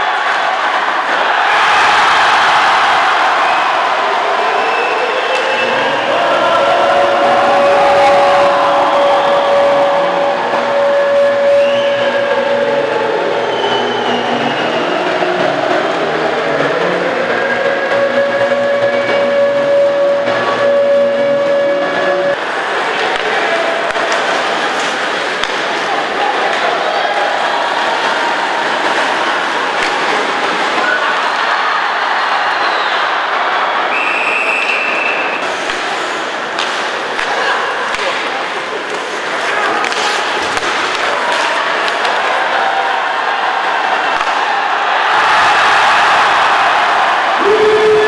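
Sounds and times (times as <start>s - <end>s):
arena crowd cheering: 0.0s - 48.0s.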